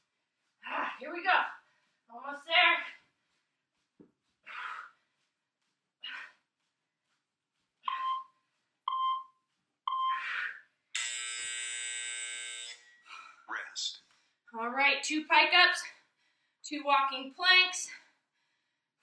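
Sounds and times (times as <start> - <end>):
short timer beeps: 7.9 - 8.2, 8.9 - 9.3, 9.9 - 10.2
long timer buzzer: 11.0 - 13.0.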